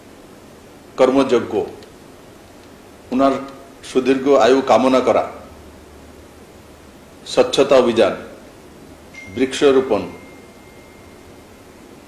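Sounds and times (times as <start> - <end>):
background hiss: 0.0 - 12.0
faint thin high tone: 9.1 - 12.0.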